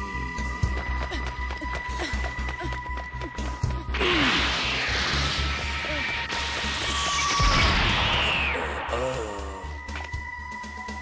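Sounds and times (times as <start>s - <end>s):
dramatic background music: 0.0s - 11.0s
rushing noise: 4.0s - 9.0s
sudden crash: 4.1s - 8.9s
high falling whistle: 6.3s - 8.8s.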